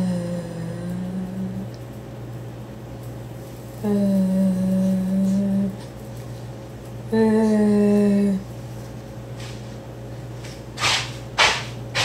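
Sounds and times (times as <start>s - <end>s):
woman humming low notes: 0.0s - 1.8s, 3.8s - 5.9s, 7.1s - 8.6s
low background hum: 0.0s - 12.0s.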